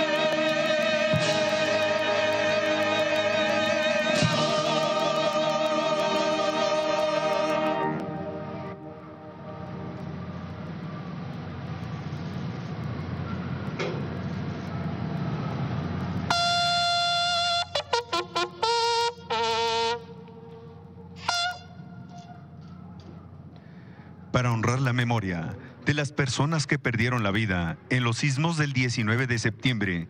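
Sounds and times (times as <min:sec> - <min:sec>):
military band bugle call: 0:00.0 - 0:10.7, 0:16.3 - 0:23.3
steady low rush: 0:00.0 - 0:30.0.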